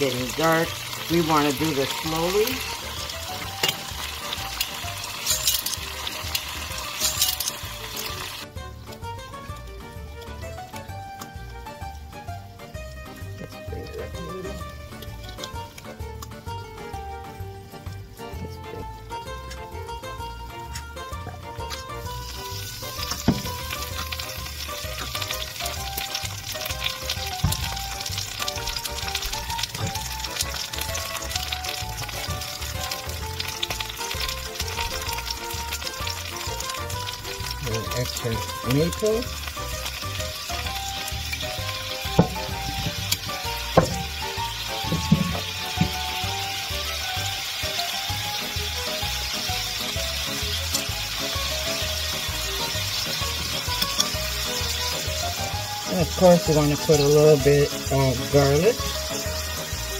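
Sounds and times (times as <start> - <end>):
background music: 0.0 - 59.9
food sizzling in a pan: 0.0 - 59.9.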